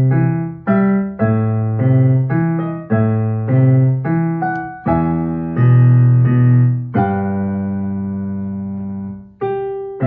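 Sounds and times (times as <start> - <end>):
piano chord ringing: 3.4 - 10.0.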